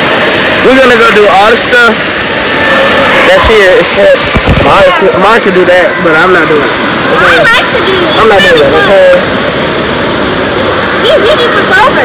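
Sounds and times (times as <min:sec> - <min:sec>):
pool water splashing: 0:00.0 - 0:12.0.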